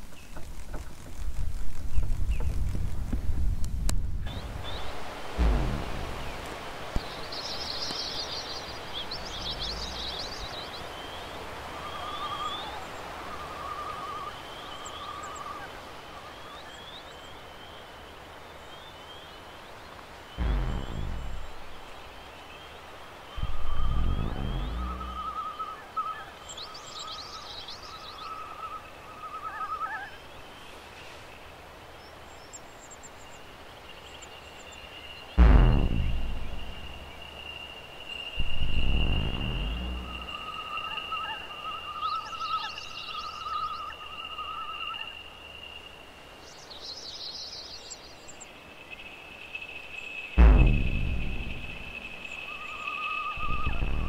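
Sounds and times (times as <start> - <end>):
soft hiss: 0.0 - 25.8, 30.2 - 42.2
warbling synth tones: 5.4 - 6.5, 20.4 - 21.8, 23.4 - 25.6, 35.4 - 37.2, 38.4 - 40.6, 50.4 - 52.4
deep downward-sweeping booms: 5.4 - 6.6, 9.2 - 10.5, 20.4 - 21.9, 23.4 - 25.4, 35.4 - 37.4, 38.4 - 40.5, 50.4 - 52.5, 53.4 - 54.0.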